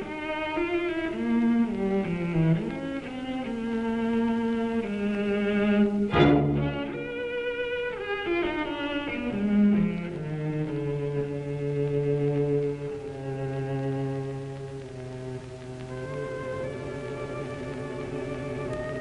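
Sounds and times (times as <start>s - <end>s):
cello bowed notes: 0.0s - 19.0s.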